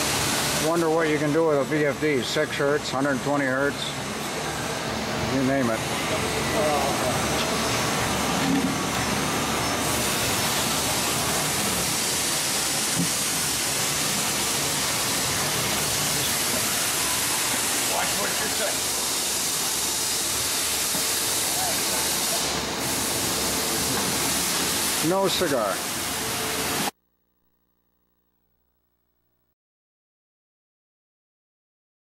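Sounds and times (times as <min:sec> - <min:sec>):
screw press machinery hissing: 0:00.0 - 0:26.9.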